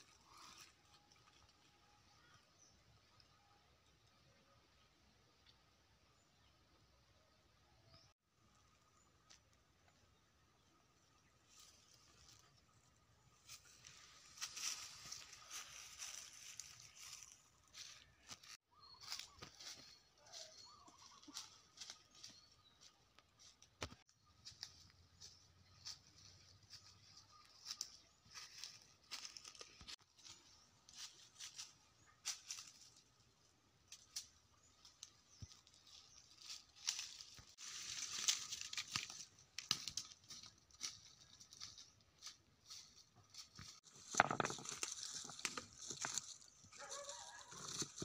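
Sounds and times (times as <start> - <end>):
footsteps crunching dry leaves: 13.4 - 23.6, 24.4 - 33.2, 35.2 - 48.0.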